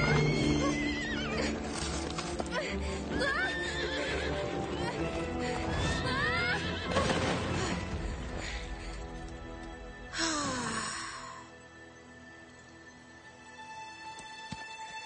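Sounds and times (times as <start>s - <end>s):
orchestral music: 0.0s - 15.0s.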